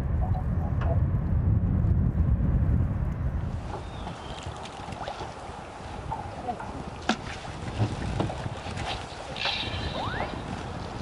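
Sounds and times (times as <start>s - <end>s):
wind buffeting the microphone: 0.0s - 11.0s.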